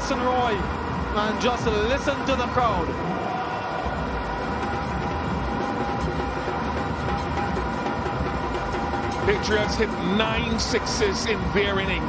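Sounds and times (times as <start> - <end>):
stadium crowd cheering: 0.1 - 12.0.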